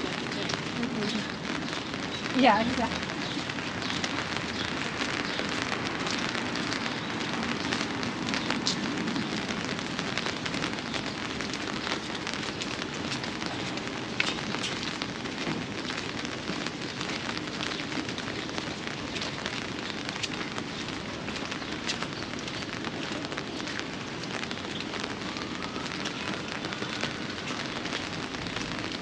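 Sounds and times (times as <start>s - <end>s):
city street hiss: 0.0s - 29.0s.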